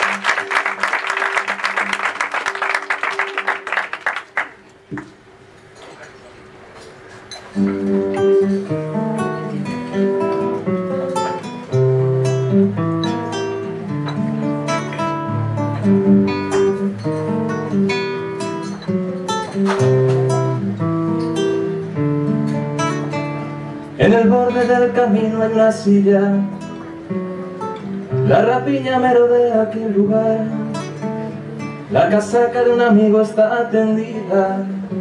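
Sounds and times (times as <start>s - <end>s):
acoustic guitar playing: 0.0s - 4.9s, 7.0s - 35.0s.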